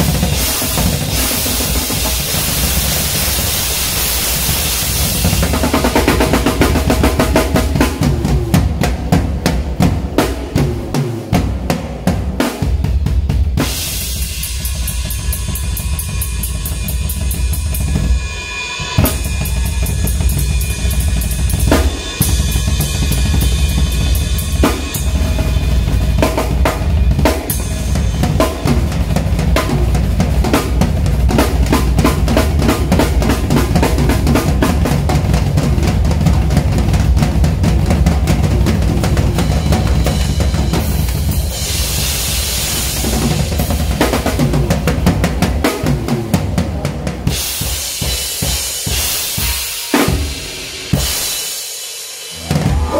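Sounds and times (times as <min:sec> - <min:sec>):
bass drum beats: 0:00.0 - 0:03.8, 0:04.4 - 0:18.2, 0:19.0 - 0:49.5, 0:52.3 - 0:52.9
snare and tom strokes: 0:00.0 - 0:12.8.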